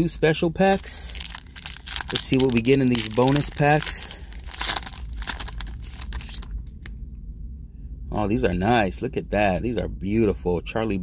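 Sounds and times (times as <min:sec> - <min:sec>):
steady low hum: 0:00.0 - 0:11.0
foil wrapper crinkling: 0:00.6 - 0:06.8.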